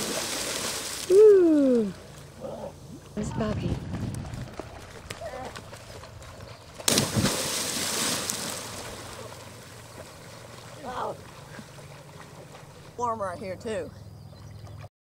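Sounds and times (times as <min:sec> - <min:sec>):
loud splash into lake: 0:00.0 - 0:01.3, 0:06.8 - 0:10.7
water churning: 0:00.0 - 0:14.9.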